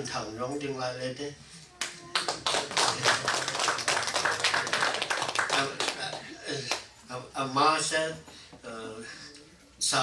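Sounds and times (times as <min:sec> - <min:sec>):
audience applauding: 0:01.8 - 0:06.8.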